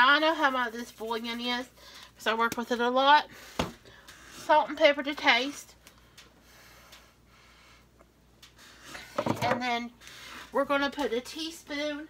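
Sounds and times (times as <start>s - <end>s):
light ticks: 5.7s - 7.1s, 8.0s - 8.6s.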